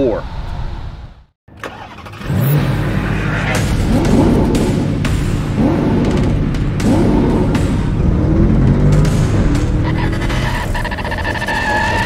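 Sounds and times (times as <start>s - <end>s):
car engine revving: 1.6s - 12.0s.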